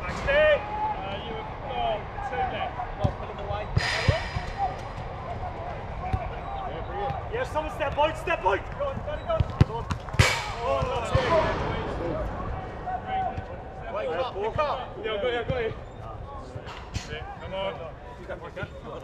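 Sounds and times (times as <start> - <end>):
players shouting: 0.0 - 9.5.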